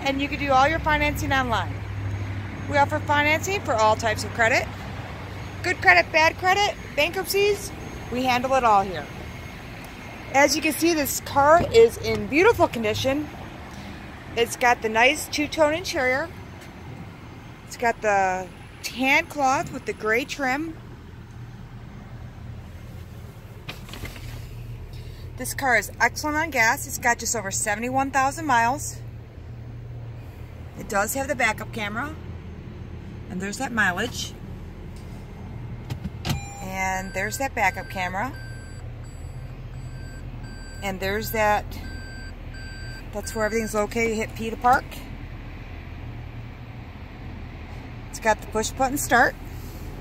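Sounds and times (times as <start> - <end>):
car cabin hum: 5.7 - 13.4, 17.8 - 39.9.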